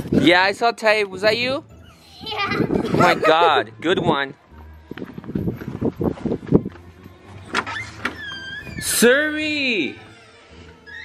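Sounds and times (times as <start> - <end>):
hurried footsteps: 4.4 - 8.8.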